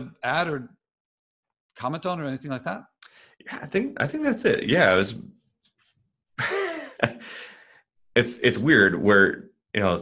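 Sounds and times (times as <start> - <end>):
man laughing breathily: 6.4 - 7.8.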